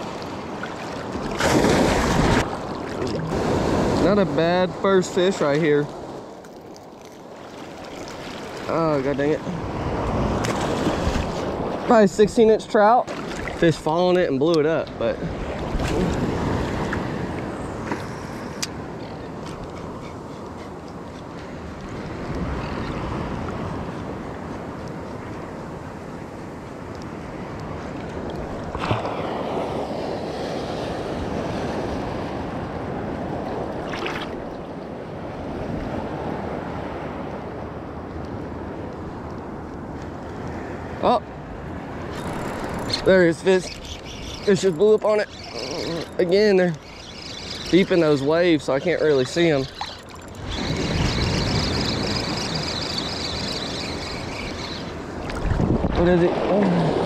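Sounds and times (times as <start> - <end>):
surf washing and breaking: 0.0 - 57.0
wind buffeting microphone: 35.3 - 57.0.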